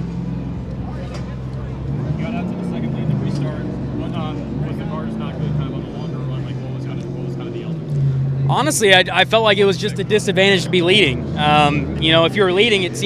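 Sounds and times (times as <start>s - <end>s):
low engine hum: 0.0s - 13.0s.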